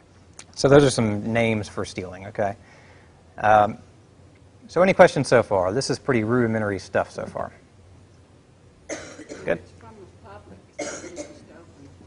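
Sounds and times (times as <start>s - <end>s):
person coughing: 8.9s - 9.6s, 10.8s - 11.5s.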